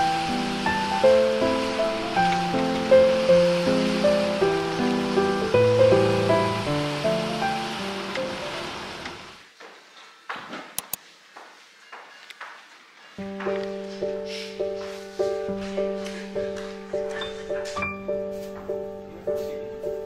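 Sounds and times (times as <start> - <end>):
steady hiss: 0.0 - 9.6, 13.2 - 20.0.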